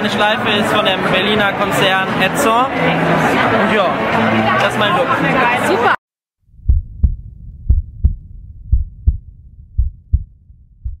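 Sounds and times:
heartbeat thumps: 6.5s - 11.0s.

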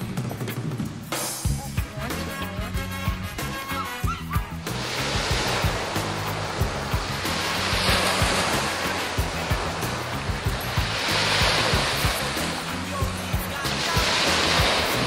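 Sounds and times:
background music with bass beat: 0.0s - 15.0s
small waves breaking on beach: 4.6s - 15.0s.

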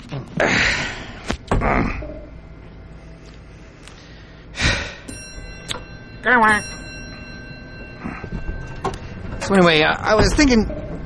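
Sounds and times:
faint steady hum: 0.0s - 11.0s
elevator doors sliding: 7.0s - 11.0s.

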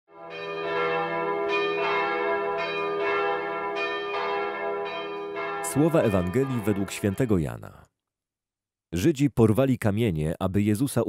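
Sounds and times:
church bells ringing: 0.1s - 7.7s.

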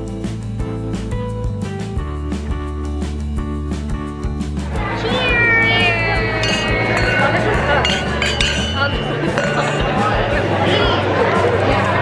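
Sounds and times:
background music: 0.0s - 12.0s
high excited voices: 4.8s - 11.0s
wine glasses clinking: 5.4s - 10.3s.

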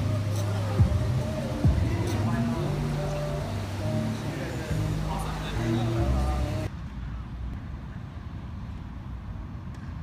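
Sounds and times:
background music: 0.0s - 6.7s.

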